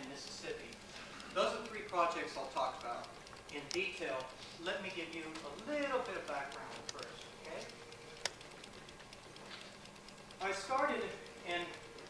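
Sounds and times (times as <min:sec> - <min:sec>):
sharp click: 0:00.0 - 0:12.0.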